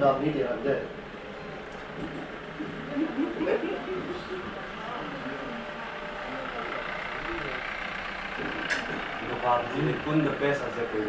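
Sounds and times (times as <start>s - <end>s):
vehicle engine idling: 0.0s - 11.0s
low talk: 2.6s - 11.0s.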